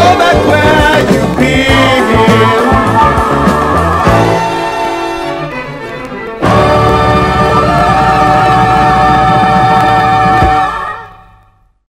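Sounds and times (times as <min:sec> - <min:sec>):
band and orchestra chord: 0:02.8 - 0:11.1.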